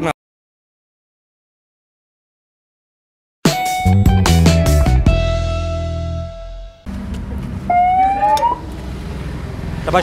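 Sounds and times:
loud rising tone: 0:06.1 - 0:09.7
traffic rumble: 0:06.8 - 0:10.0
engines idling: 0:06.9 - 0:10.0.

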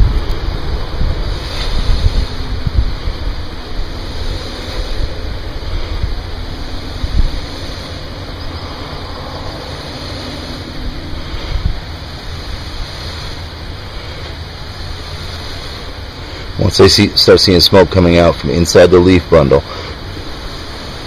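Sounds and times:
rushing air with low rumble: 0:00.0 - 0:21.0.

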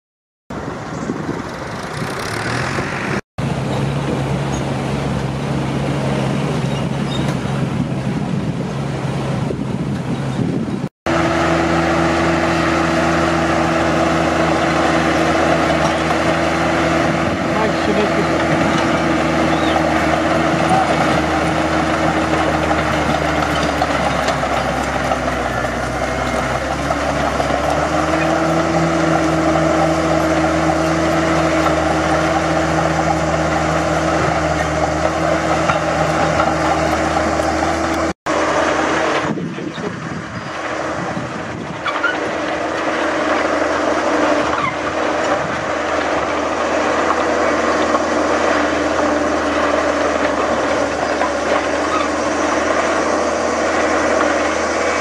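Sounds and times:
heavy diesel engine running: 0:00.5 - 0:55.0.

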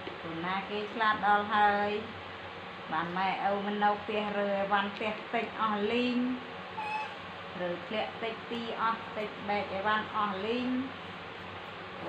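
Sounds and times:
woman's voice: 0:00.1 - 0:02.2, 0:02.9 - 0:06.5, 0:07.6 - 0:11.0
baby monkey high-pitched call: 0:06.8 - 0:07.3.

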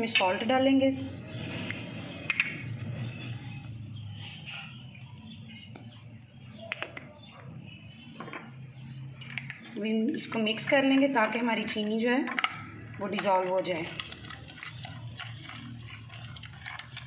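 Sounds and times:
spoon stirring thick mixture: 0:02.8 - 0:08.1, 0:13.0 - 0:17.0.

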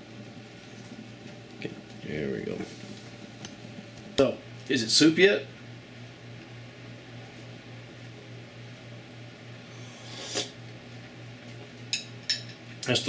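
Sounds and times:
steady low hum: 0:00.0 - 0:13.0
slurp of soup: 0:09.8 - 0:10.6.

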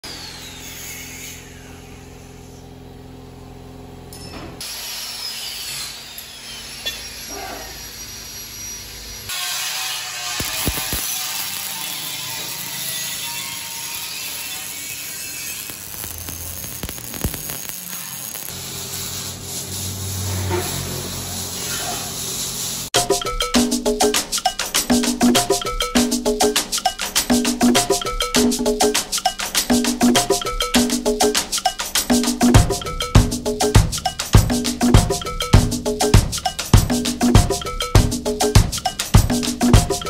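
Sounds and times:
power tools running: 0:00.0 - 0:21.6
music: 0:23.0 - 0:40.0.

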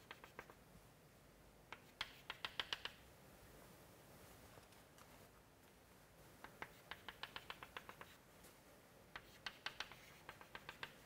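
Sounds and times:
chalk tapping on chalkboard: 0:00.0 - 0:00.6, 0:01.7 - 0:03.0, 0:06.4 - 0:08.2, 0:09.1 - 0:11.0.

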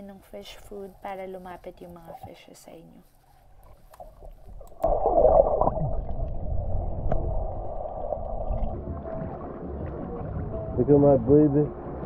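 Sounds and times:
muffled water sloshing and gurgling: 0:03.6 - 0:12.0.

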